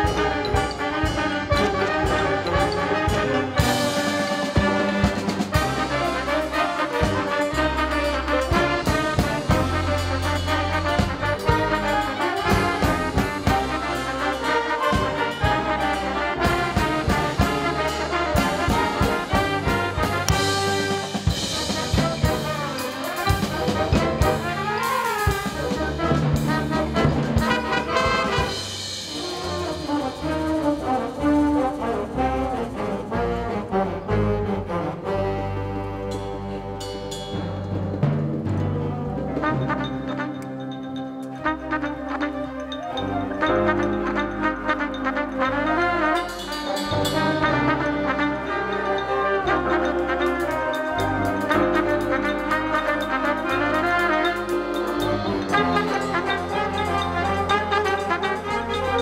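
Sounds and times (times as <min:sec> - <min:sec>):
rapid percussive strokes: 0:00.0 - 0:34.0, 0:36.2 - 0:59.0
brass: 0:00.0 - 0:59.0
concert band playing: 0:00.0 - 0:59.0.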